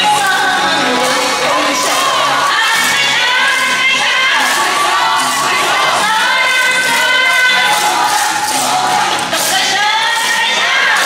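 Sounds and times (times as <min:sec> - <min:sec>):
dance music: 0:00.0 - 0:11.0
group shouting and chanting: 0:00.0 - 0:11.0.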